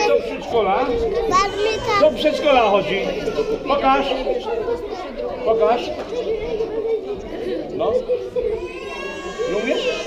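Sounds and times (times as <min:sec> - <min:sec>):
indistinct chatter of children: 0:00.0 - 0:10.0.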